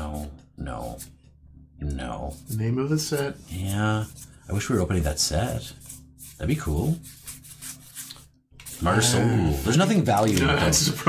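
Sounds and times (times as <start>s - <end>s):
man speaking: 8.8s - 11.0s.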